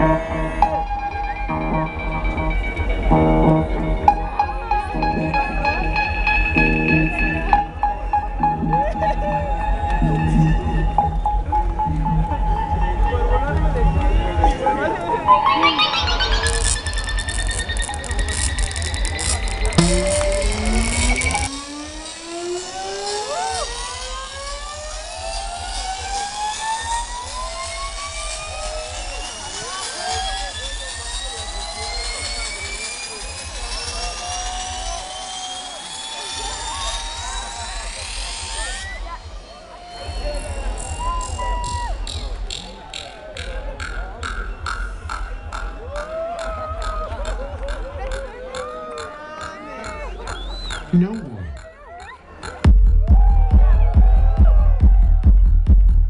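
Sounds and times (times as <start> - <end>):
electronic dance music: 0.0 - 45.9, 46.7 - 56.0
crowd whooping and cheering: 7.4 - 42.9, 44.9 - 56.0
synth riser climbing in pitch: 9.9 - 40.8, 50.8 - 51.9
ticking hi-hat: 15.9 - 35.4.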